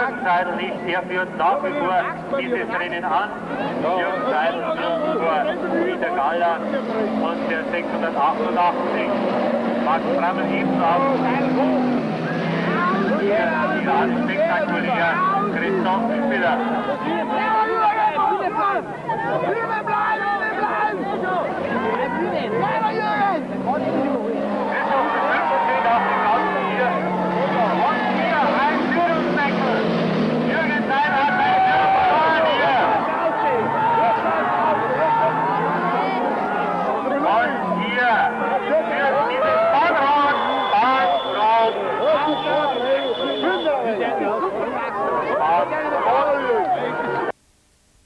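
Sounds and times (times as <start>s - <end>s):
race car engines: 0.0s - 47.3s
spectators chatting: 0.0s - 47.4s.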